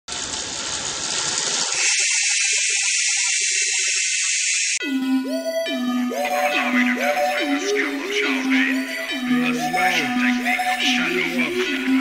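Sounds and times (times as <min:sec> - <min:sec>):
hissing noise sound effect: 0:01.8 - 0:04.8.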